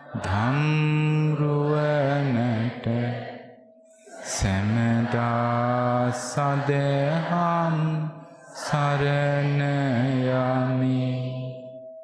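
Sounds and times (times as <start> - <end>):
man chanting in low voice: 0.0 - 3.4, 4.1 - 11.8.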